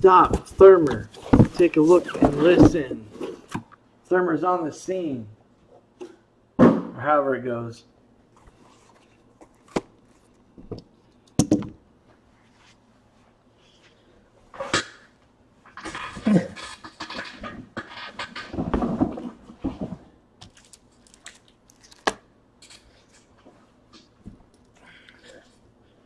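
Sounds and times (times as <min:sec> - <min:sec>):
wrapper crinkling and rustling: 0:20.4 - 0:22.2.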